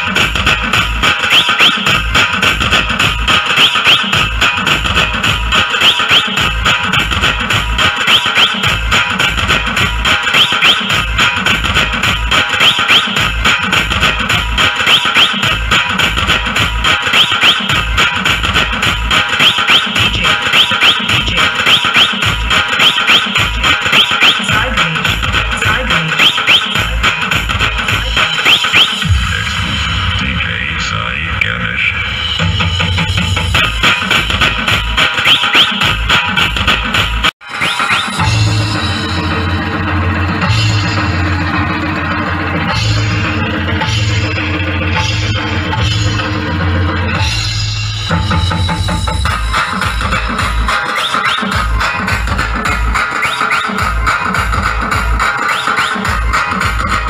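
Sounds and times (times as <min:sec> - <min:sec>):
fast drumming over bass beat: 0:00.0 - 0:57.0
rising whistle-like chirps: 0:03.6 - 0:04.2, 0:05.8 - 0:06.4, 0:08.1 - 0:08.6, 0:10.4 - 0:10.9, 0:12.6 - 0:13.2, 0:14.9 - 0:15.4, 0:17.1 - 0:17.7, 0:19.4 - 0:21.1, 0:21.7 - 0:22.2, 0:22.8 - 0:24.4, 0:26.2 - 0:26.8, 0:28.3 - 0:29.1, 0:35.2 - 0:35.8, 0:50.9 - 0:51.6, 0:53.1 - 0:53.8.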